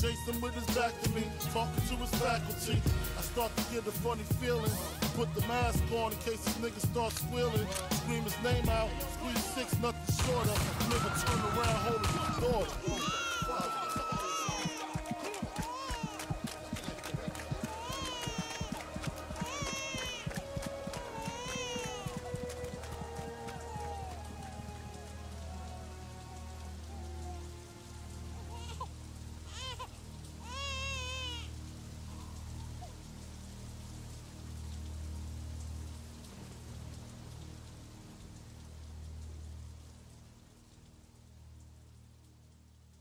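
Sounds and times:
hip-hop track: 0.0 - 20.2
steady hiss: 0.0 - 43.0
deep bass notes pulsing: 1.6 - 7.9, 8.5 - 12.9.

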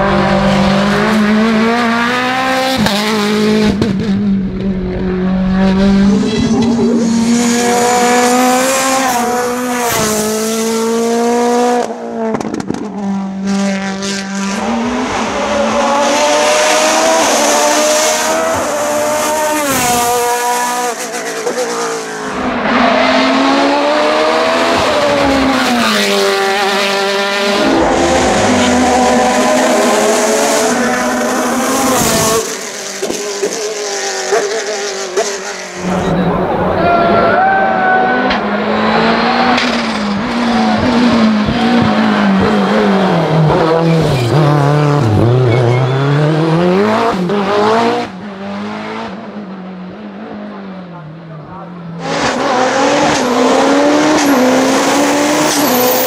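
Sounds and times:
race car engines revving past: 0.0 - 56.0.

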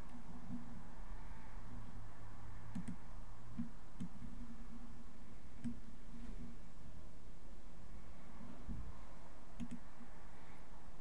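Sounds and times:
low room hum: 0.0 - 11.0
computer mouse clicking: 2.7 - 4.5, 5.6 - 5.9, 9.6 - 10.0.

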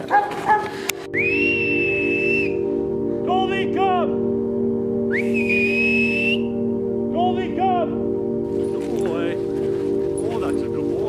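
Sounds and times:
loud breathy whistle: 1.1 - 2.8, 5.1 - 6.6.

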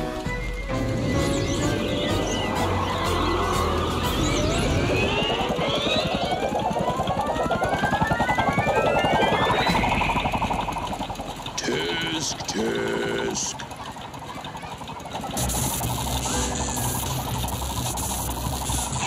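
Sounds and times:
cartoon music: 0.0 - 13.4, 14.5 - 19.0
stepped tone rising in pitch: 0.2 - 13.0, 14.9 - 19.0.

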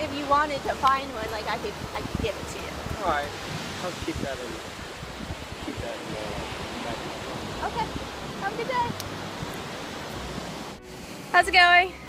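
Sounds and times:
ocean surf breaking: 0.0 - 11.9
wind on microphone: 0.0 - 12.0.

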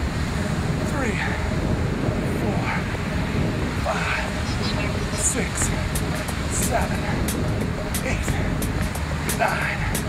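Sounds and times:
steady low noise: 0.0 - 10.0.

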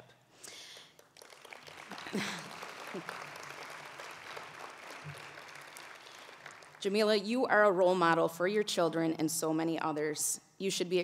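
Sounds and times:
audience applauding: 0.7 - 6.8.

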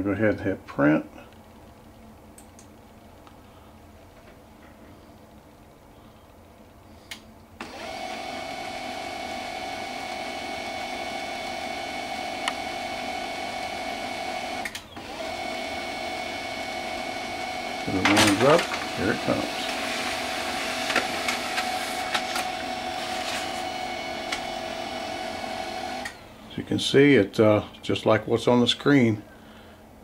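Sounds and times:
printer motor whining: 7.6 - 26.4
printer click: 17.9 - 24.6.

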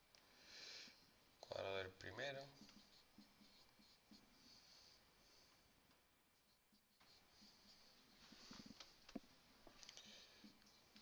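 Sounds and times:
marker squeaking on whiteboard: 2.3 - 4.6, 6.3 - 9.0, 9.8 - 11.0.

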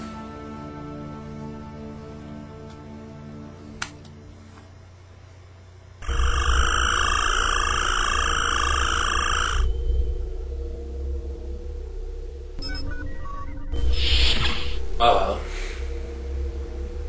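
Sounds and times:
low steady hum: 0.0 - 17.0
shimmering warbling tone: 6.0 - 10.2.

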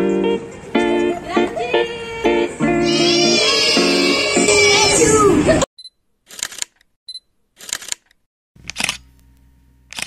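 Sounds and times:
camera shutter releasing: 7.6 - 8.0, 8.6 - 9.1.

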